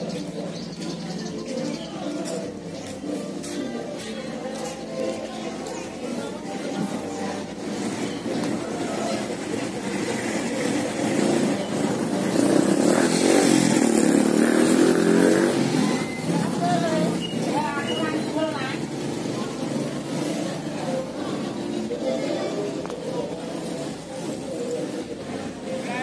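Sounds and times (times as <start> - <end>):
motorcycle passing: 0.0 - 26.0
people talking: 0.0 - 26.0.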